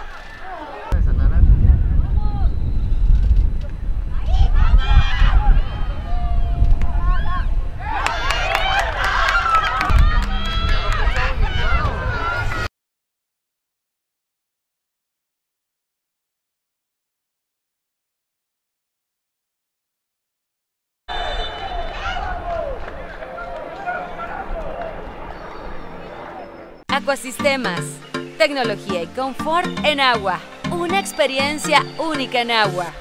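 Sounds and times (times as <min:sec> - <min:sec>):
stadium crowd shouting: 0:04.2 - 0:12.7, 0:21.1 - 0:26.8
distant shouting voices: 0:21.1 - 0:26.8.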